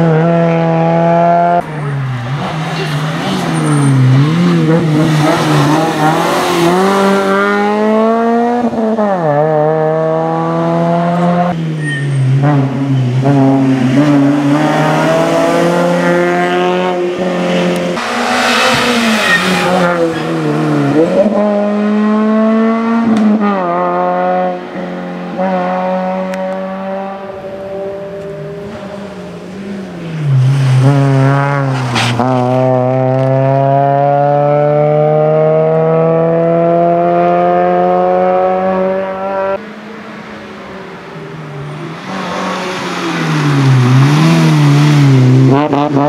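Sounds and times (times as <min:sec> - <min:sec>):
rally car engine revving: 0:00.0 - 0:46.0.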